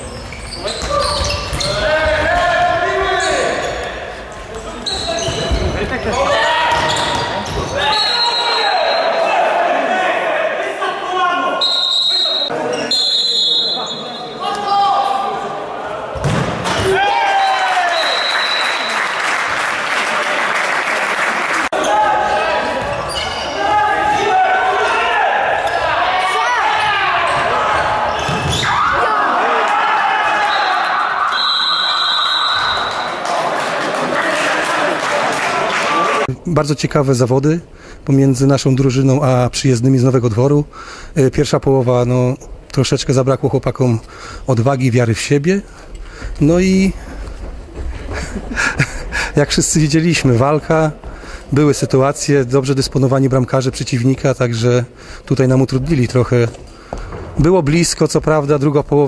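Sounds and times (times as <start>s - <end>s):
players shouting: 4.8s - 12.9s, 21.7s - 36.3s
ball thudding on court floor: 16.2s - 16.9s.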